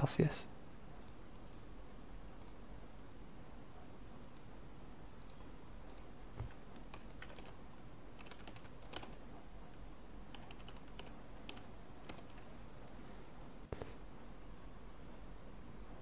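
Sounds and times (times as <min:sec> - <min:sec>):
keyboard typing: 0:05.2 - 0:13.5.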